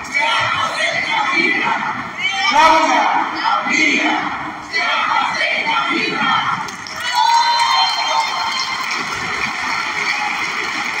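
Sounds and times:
voices cheering: 5.7 - 11.0
crowd applauding: 6.7 - 11.0.

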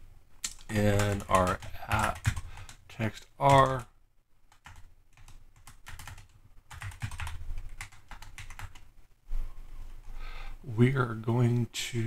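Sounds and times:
typing on computer keyboard: 0.4 - 2.8, 3.4 - 3.9, 4.5 - 8.9.

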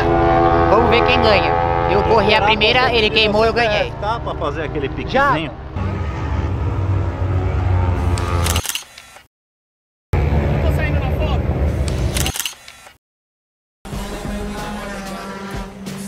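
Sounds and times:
outdoor noise: 0.0 - 9.3, 10.1 - 13.0
camera shutter clicks: 8.4 - 9.3, 11.9 - 13.0.

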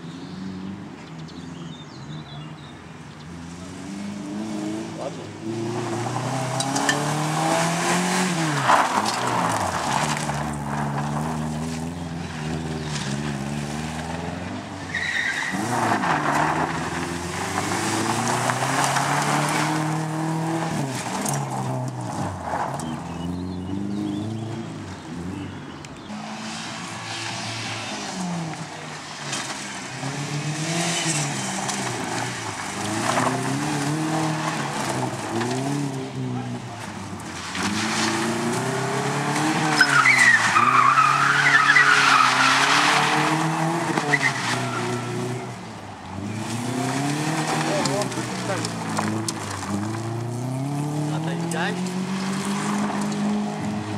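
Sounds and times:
rally car engine revving: 1.4 - 53.9
tyre squeal: 14.9 - 16.8, 39.5 - 45.5.

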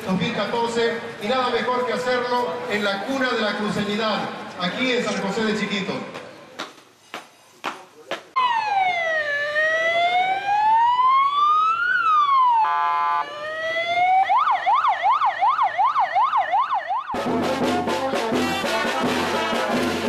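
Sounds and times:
electronic siren wailing: 8.4 - 17.3
siren yelping: 8.4 - 17.3
brass band playing: 17.2 - 20.0
horn blast: 17.2 - 20.0.

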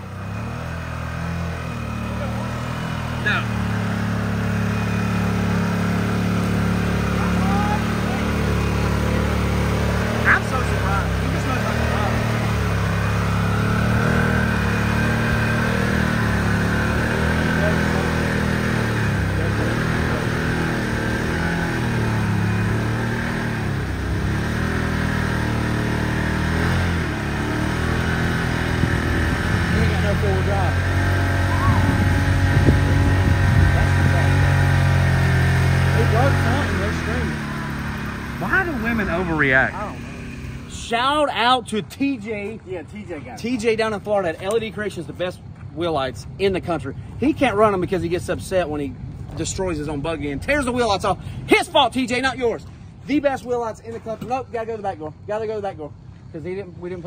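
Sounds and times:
utility vehicle engine revving: 0.0 - 57.0.

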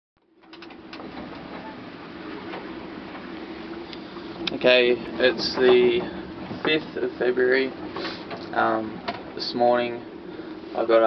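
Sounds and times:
low steady hum: 0.2 - 11.0
wind and sea rushing: 0.5 - 11.0.

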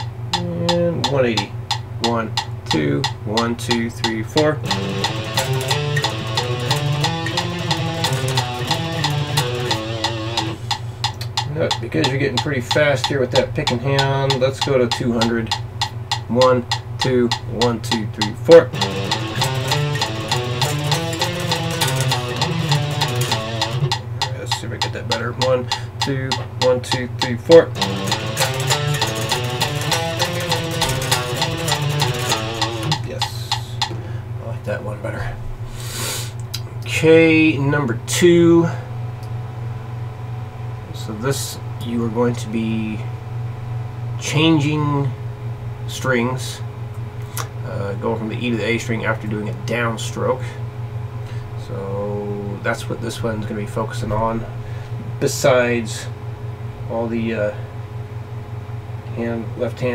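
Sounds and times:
metronome clicks: 0.0 - 34.0
fast electric guitar picking: 0.0 - 34.2.

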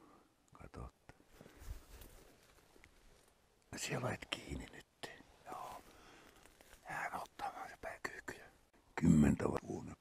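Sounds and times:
rustling in brush: 1.3 - 3.4, 5.2 - 7.5.

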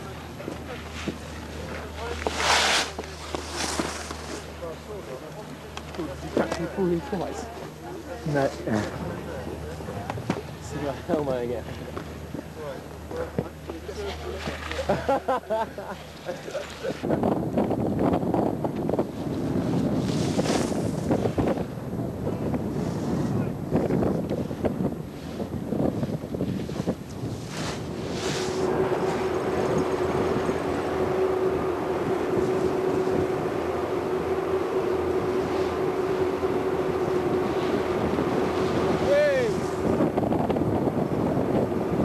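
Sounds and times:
steady mechanical hum: 0.0 - 42.0
wind buffeting microphone: 17.0 - 42.0.

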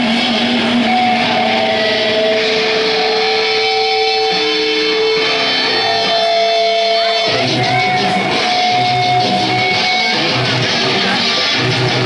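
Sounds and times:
electric guitars sustained notes: 0.0 - 12.0
live rock band playing: 0.0 - 12.0.

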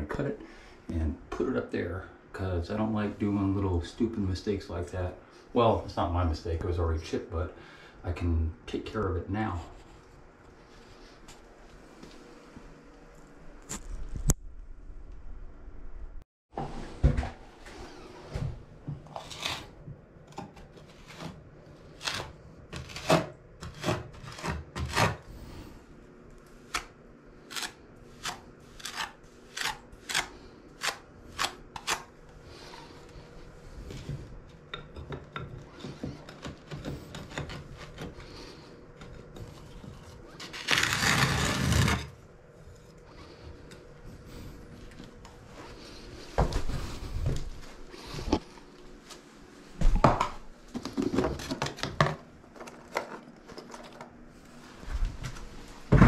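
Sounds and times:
metal scraper scraping tiles: 19.1 - 19.8, 20.8 - 21.4, 22.0 - 25.3, 26.7 - 32.8, 40.3 - 42.2.

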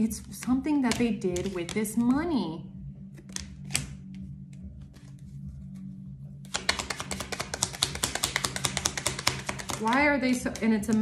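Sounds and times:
playing cards being shuffled: 0.2 - 2.1, 3.0 - 11.0.

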